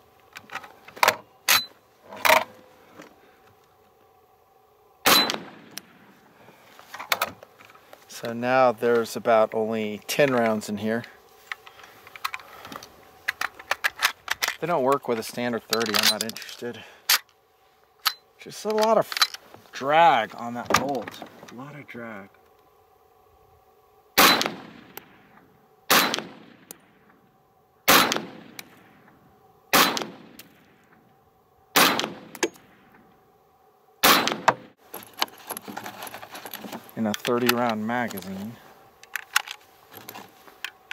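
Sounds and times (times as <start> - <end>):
rifle shots echoing: 5.0 - 6.0, 24.2 - 25.3, 25.9 - 27.0, 27.9 - 29.0, 29.7 - 30.7, 31.7 - 32.9, 34.0 - 34.7.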